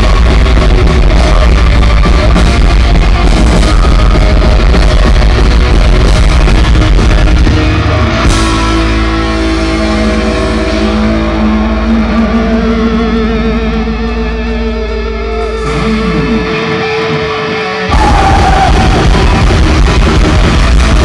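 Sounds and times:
electric guitar notes with vibrato: 0.0s - 21.0s
heavy metal band playing: 0.0s - 21.0s.

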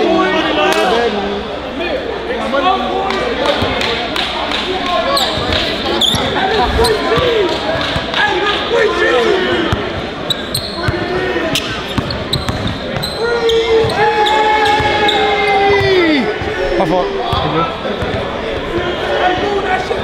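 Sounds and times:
loud crowd voices: 0.0s - 20.0s.

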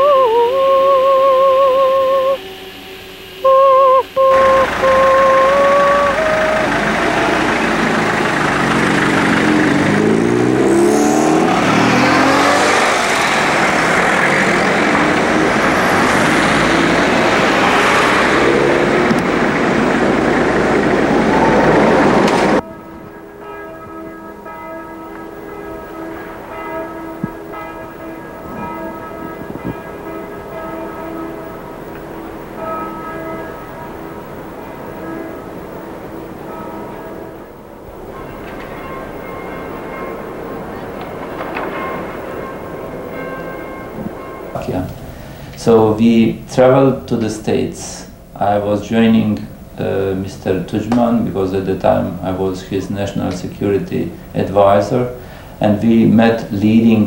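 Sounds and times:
steady held tones: 0.0s - 57.0s
street traffic noise: 4.2s - 57.0s
vehicle passing close: 4.3s - 22.6s, 25.7s - 47.3s.

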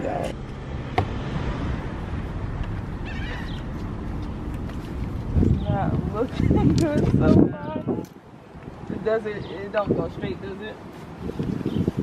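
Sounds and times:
low outdoor rumble: 0.0s - 9.0s
wind on microphone: 1.1s - 12.0s.

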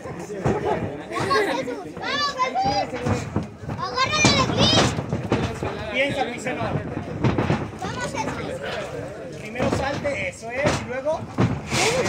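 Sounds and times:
voices talking over each other: 0.0s - 12.0s.

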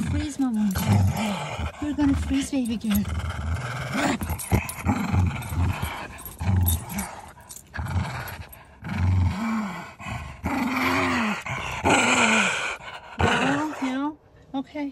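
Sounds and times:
small dog growling: 0.0s - 14.0s.

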